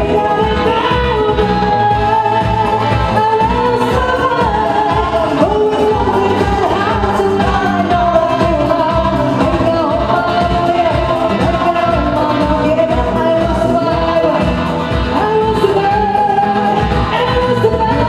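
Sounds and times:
live band with bass guitar: 0.0 - 18.0
woman singing pop song: 0.0 - 18.0.

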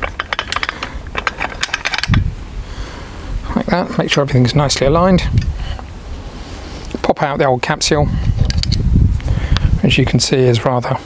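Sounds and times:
metal clicks and rattles: 0.0 - 2.3.

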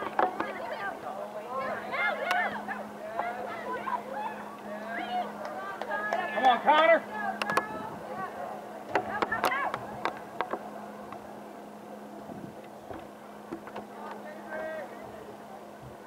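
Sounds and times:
low steady hum: 0.0 - 16.0
distant shouts of players: 1.5 - 10.0.

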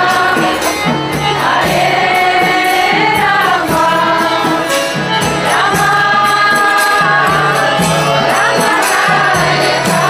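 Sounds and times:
jingling hand percussion: 0.0 - 10.0
group chanting in chorus: 5.5 - 10.0.

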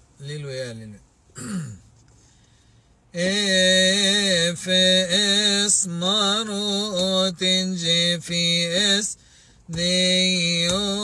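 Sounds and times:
man clearing his throat: 1.4 - 1.8.

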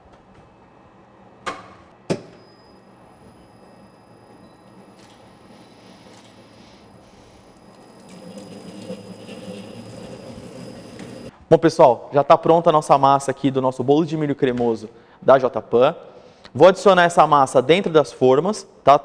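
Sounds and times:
mixer motor hum with high whine: 0.0 - 11.4.

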